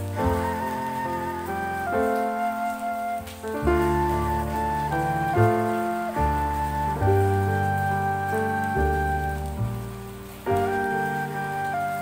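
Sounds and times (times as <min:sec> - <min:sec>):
rain patter: 0:00.0 - 0:12.0
slow soft instrumental music: 0:00.0 - 0:12.0.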